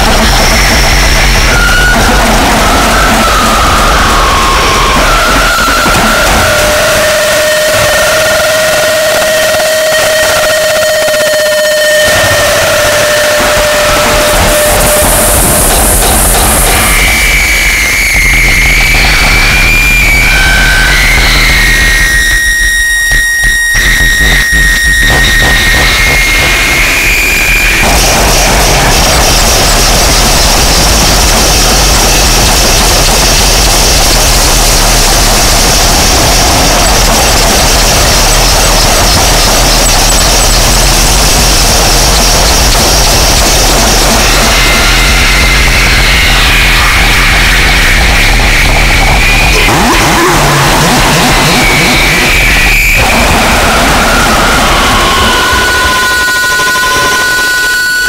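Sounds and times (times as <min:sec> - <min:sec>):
distorted harsh noise: 0:00.0 - 0:58.0
high squealing tones: 0:00.0 - 0:58.0.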